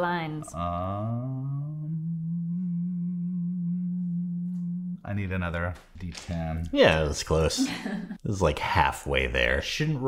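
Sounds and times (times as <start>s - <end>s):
man humming low: 0.5s - 5.1s.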